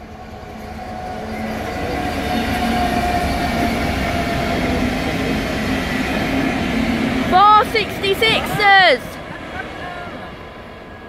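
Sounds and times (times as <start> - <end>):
freight train rumbling past: 0.0 - 11.0.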